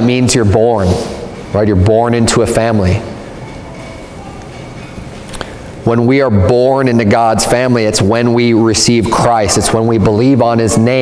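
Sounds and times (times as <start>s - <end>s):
room noise: 0.0s - 11.0s.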